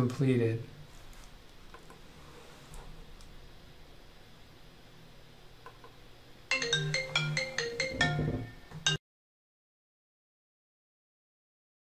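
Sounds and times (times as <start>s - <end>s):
quick melody of bright notes: 6.5s - 9.0s.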